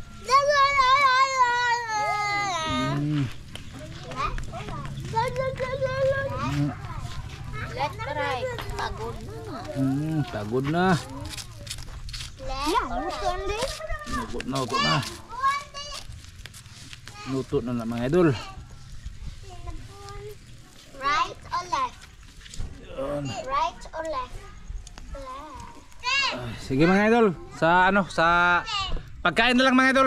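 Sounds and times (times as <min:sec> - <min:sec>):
child calling out: 0:00.3 - 0:03.3.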